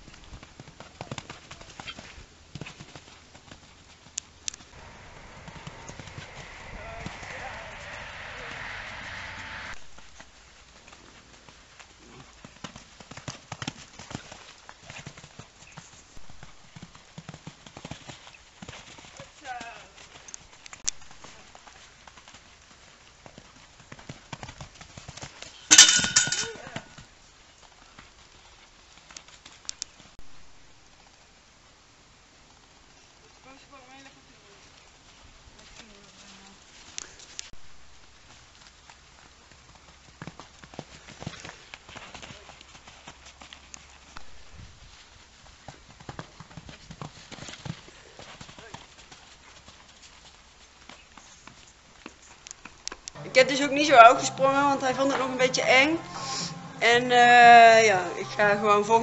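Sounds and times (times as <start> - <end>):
horse hooves cantering on sand: 0.0 - 8.0, 9.8 - 31.4, 32.5 - 55.7
brief loud sound: 4.8 - 10.0.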